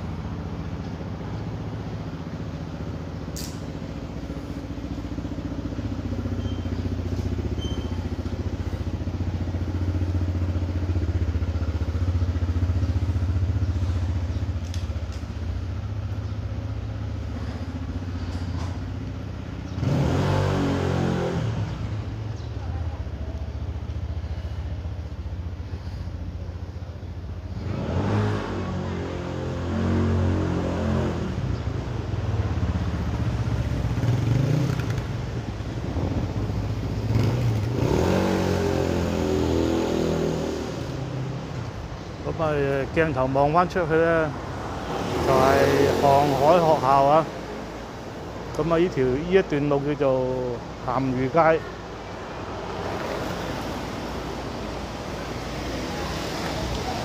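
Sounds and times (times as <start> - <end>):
car engine running slowly: 0.0 - 20.0, 21.7 - 27.8
motor vehicle passing: 0.0 - 49.1, 50.7 - 57.0.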